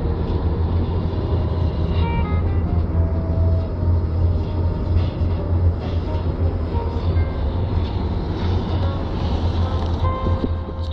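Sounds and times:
car engine and tyre rumble: 0:00.0 - 0:10.9.

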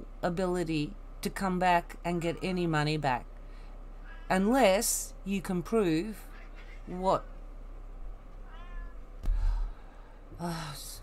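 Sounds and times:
cat meowing: 0:08.4 - 0:09.1.

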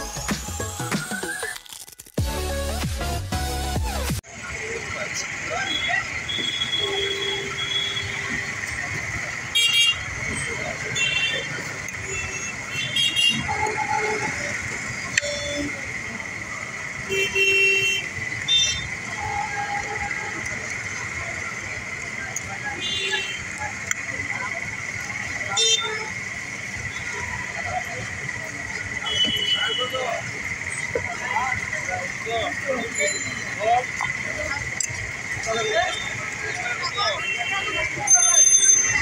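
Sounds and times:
traffic hum: 0:00.0 - 0:39.0
vehicle horns tooting: 0:05.6 - 0:08.7, 0:09.5 - 0:15.9, 0:17.0 - 0:20.5, 0:22.6 - 0:23.6, 0:25.4 - 0:26.2, 0:28.8 - 0:30.8, 0:35.4 - 0:39.0
distant voices: 0:18.0 - 0:39.0.

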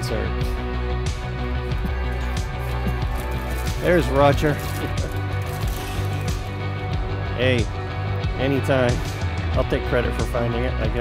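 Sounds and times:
background music with low tones: 0:00.0 - 0:11.0
foil wrapper crinkling and tearing: 0:01.8 - 0:06.6.

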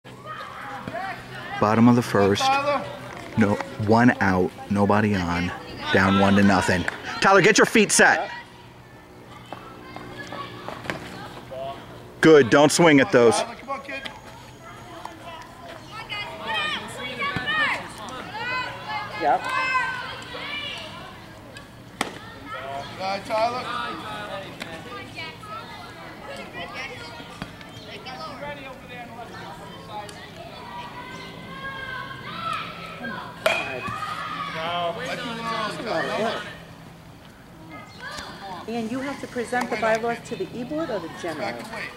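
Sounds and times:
voices chatting: 0:00.0 - 0:41.9
bat hitting ball knock: 0:33.4 - 0:34.0.

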